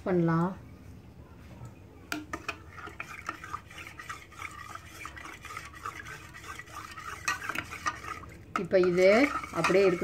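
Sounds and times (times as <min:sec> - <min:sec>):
spoon scraping in steel mug: 0:02.2 - 0:10.0.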